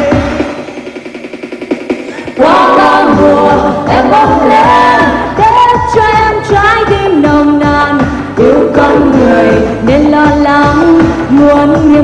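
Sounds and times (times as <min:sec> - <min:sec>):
live pop song with band: 0:02.1 - 0:12.0
person singing: 0:08.4 - 0:12.0.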